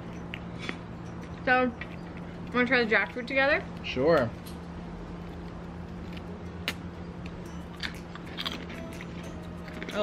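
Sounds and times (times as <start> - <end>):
people chewing soft fruit: 0.0 - 10.0
steady low hum: 0.0 - 10.0.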